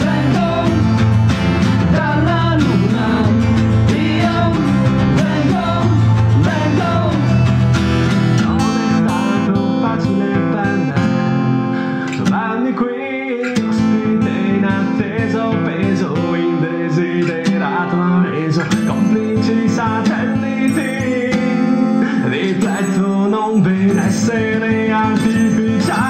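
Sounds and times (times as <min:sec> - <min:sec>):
acoustic guitars strummed and picked: 0:00.0 - 0:26.0.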